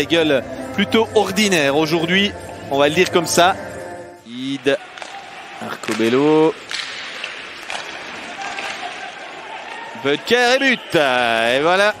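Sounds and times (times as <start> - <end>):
skates scraping ice: 4.8 - 10.0.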